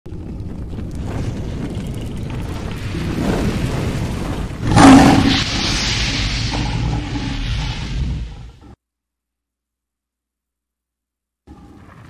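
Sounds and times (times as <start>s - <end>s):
deep rumble: 0.1s - 8.8s
rush of noise: 0.8s - 8.8s
roar-like burst: 2.8s - 8.8s.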